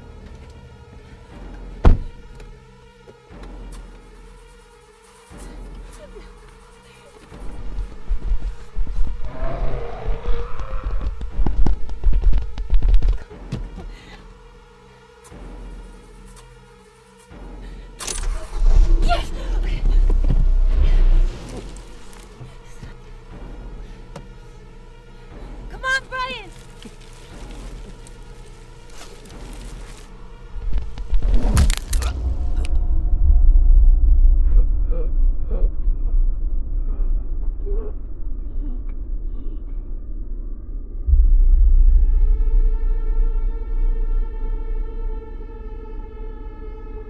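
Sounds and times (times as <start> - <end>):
car engine rumbling: 5.3 - 16.4, 17.3 - 47.0.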